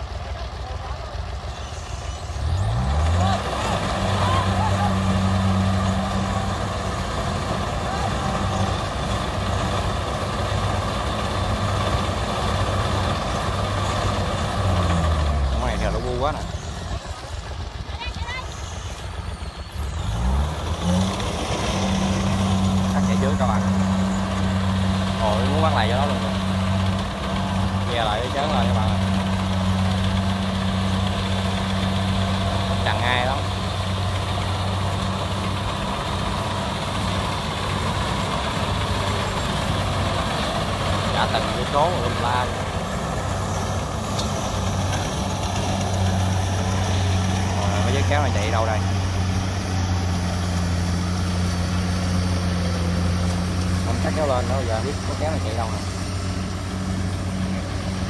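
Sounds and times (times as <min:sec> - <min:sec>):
diesel engine running: 0:00.0 - 0:58.0.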